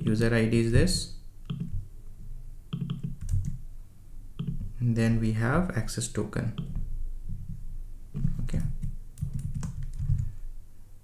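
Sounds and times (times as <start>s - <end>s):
computer keys clicking: 1.4s - 1.8s, 2.7s - 3.6s, 4.4s - 4.8s, 6.5s - 7.6s, 8.2s - 10.3s.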